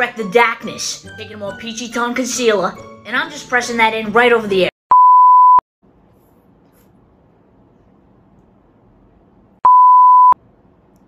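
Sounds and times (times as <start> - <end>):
electronic censor bleep: 4.9 - 5.6, 9.6 - 10.4.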